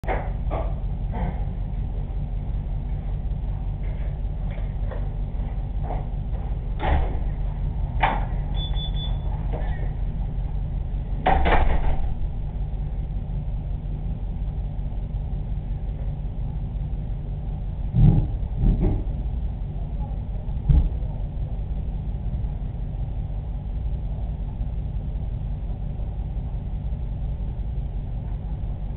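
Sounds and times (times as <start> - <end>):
steady low rumble: 0.0 - 28.9.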